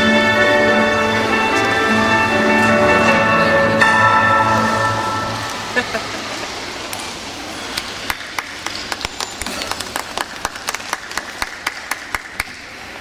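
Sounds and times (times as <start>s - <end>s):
small crowd clapping: 7.8s - 12.8s.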